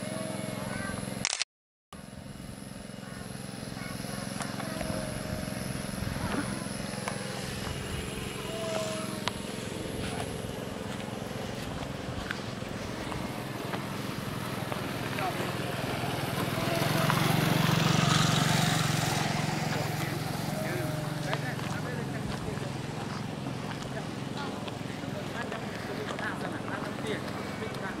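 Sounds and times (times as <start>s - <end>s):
distant indistinct voices: 0.0s - 1.2s, 2.0s - 28.0s
low engine hum: 0.0s - 1.2s, 2.0s - 28.0s.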